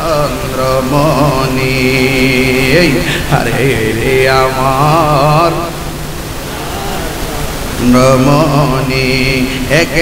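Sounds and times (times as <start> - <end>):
man chanting a lament: 0.0 - 5.8, 6.5 - 10.0
steady hiss: 0.0 - 10.0.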